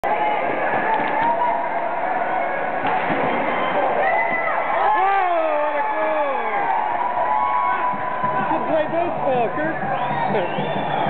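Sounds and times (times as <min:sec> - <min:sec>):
spectators' voices echoing: 0:00.0 - 0:11.0.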